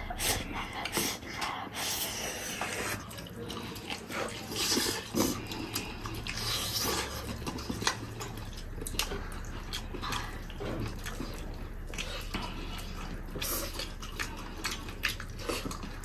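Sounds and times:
wet chewing and lip-smacking: 0.0s - 16.0s.

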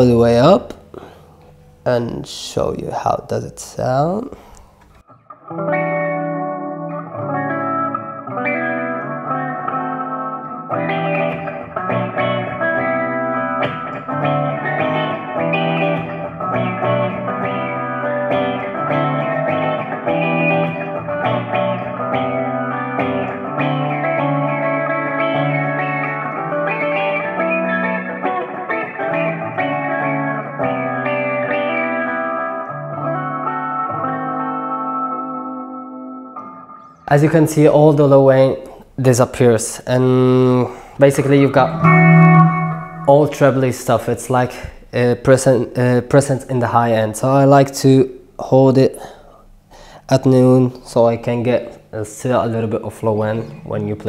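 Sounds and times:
envelope-filtered electric guitar: 4.4s - 37.1s, 41.2s - 43.8s.

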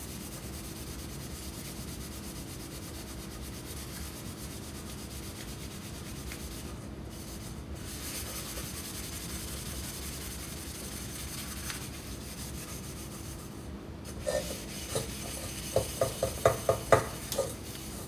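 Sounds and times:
sponge scrubbing steel pot: 14.2s - 18.0s.

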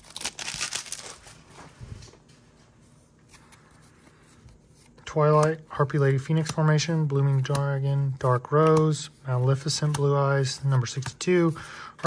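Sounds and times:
foil wrapper crinkling: 0.0s - 1.4s
cards rustling: 0.0s - 1.5s, 3.2s - 11.8s.

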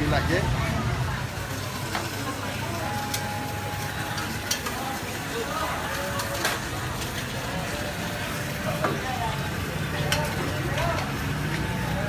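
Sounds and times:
food sizzling on a griddle: 0.0s - 12.0s.

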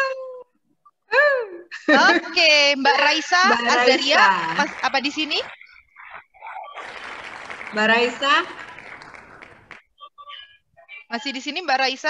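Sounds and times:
woman speaking: 1.1s - 5.6s, 7.8s - 8.6s, 10.0s - 12.0s.

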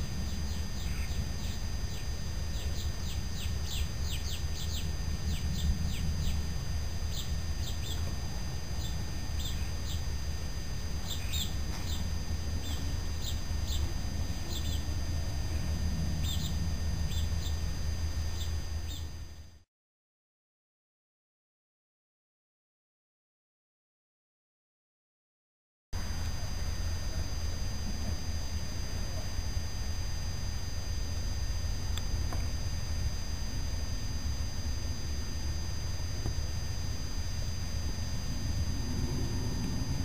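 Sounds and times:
steady low rumble: 0.0s - 19.6s, 26.0s - 40.0s
small birds chirping: 0.1s - 10.2s, 11.0s - 19.2s.

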